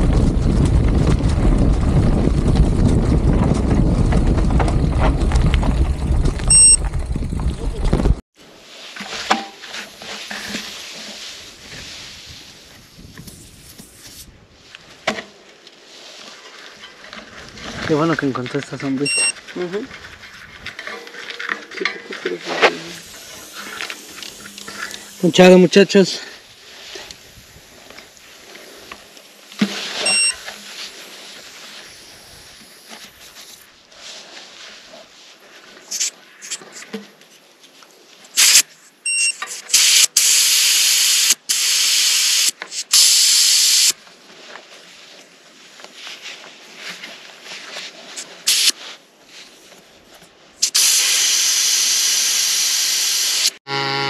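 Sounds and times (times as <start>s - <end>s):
air hissing from bike tyre: 22.9s - 34.2s, 38.3s - 38.7s, 39.5s - 44.0s, 48.2s - 49.0s, 50.6s - 53.6s.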